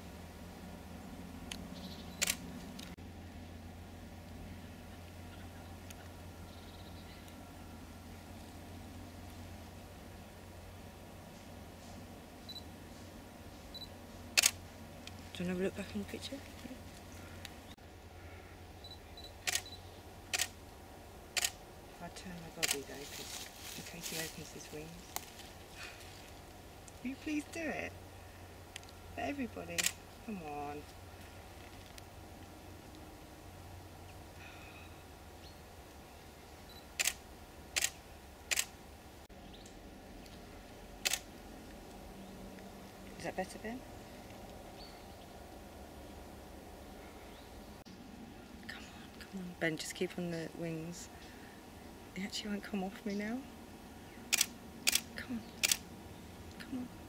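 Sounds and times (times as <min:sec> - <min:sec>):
camera autofocus beeps: 0:02.1 - 0:02.4, 0:12.5 - 0:12.7, 0:13.7 - 0:14.6, 0:18.8 - 0:20.5, 0:36.7 - 0:37.2
camera shutter clacks: 0:55.6 - 0:55.8.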